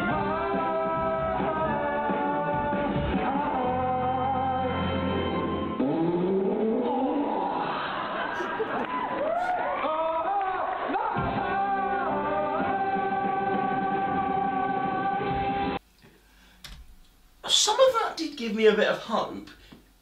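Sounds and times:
backing music: 0:00.0 - 0:06.5, 0:09.9 - 0:15.8.

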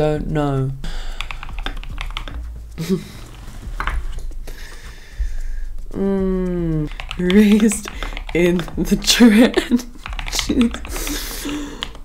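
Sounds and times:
keyboard typing: 0:01.1 - 0:04.4, 0:06.7 - 0:12.0.

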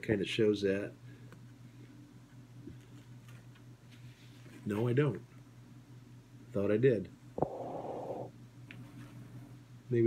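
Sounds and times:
low electrical hum: 0:00.0 - 0:10.0
paper poster board rustling: 0:02.6 - 0:05.2.

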